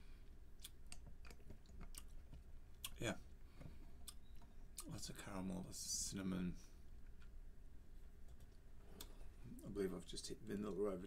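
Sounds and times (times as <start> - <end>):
wet mouth clicks and lip smacks: 4.0 - 4.9.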